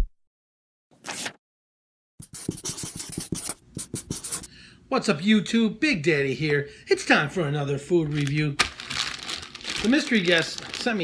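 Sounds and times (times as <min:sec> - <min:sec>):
marker pen writing on paper: 0:02.2 - 0:04.5.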